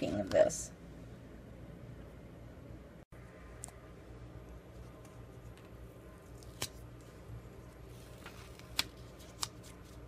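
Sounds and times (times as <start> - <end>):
paper rustling: 4.8 - 10.0
sharp paper crackles: 7.8 - 10.0.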